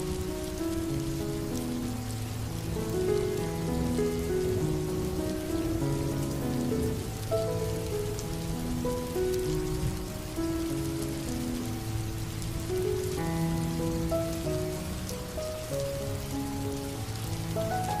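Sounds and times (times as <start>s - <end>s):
slow piano melody: 0.0s - 18.0s
steady rain falling: 0.0s - 18.0s.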